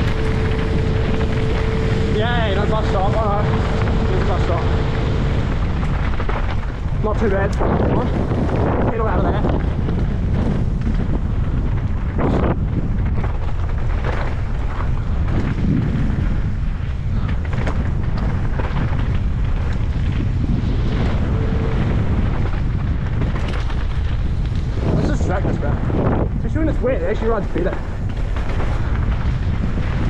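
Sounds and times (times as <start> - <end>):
bike rattling over stones: 0.0 - 30.0
wind rumble on microphone: 0.0 - 30.0.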